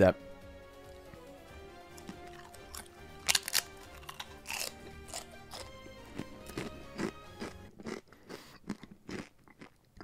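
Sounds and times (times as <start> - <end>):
background music: 0.0 - 8.1
chip crunching: 1.9 - 9.9.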